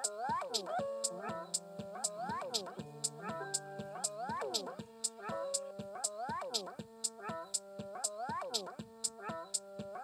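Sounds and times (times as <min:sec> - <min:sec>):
high ticking beat: 0:00.0 - 0:10.0.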